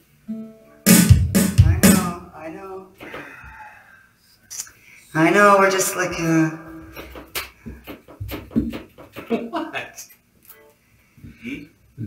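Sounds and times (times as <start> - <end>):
acoustic guitar strums: 0.9 - 2.3
electric bass notes: 0.9 - 2.3.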